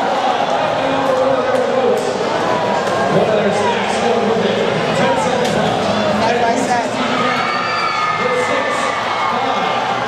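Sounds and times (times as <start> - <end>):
large crowd talking and shouting: 0.0 - 10.0.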